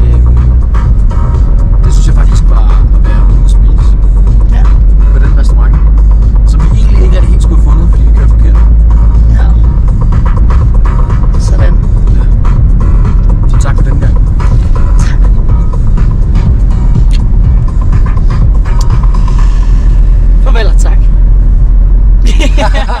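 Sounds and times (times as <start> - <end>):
car engine and road rumble: 0.0 - 23.0.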